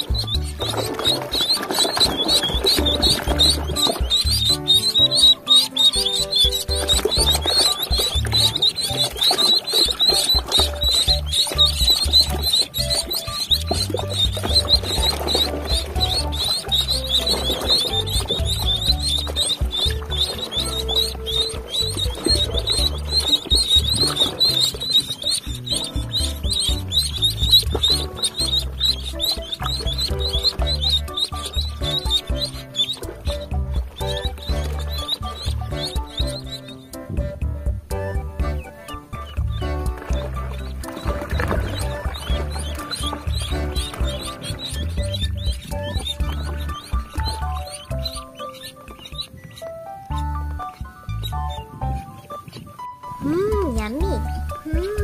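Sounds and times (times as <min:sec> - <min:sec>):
background music: 0:00.0 - 0:55.0
ducklings peeping: 0:00.0 - 0:55.0.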